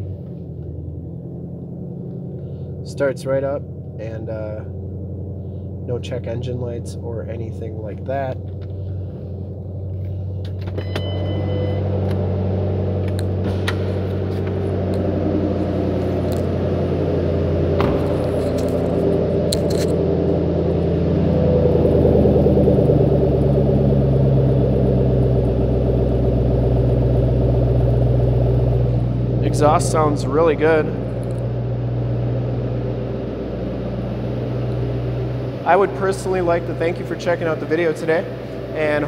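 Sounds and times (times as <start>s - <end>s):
car engine idling: 0.0s - 39.0s.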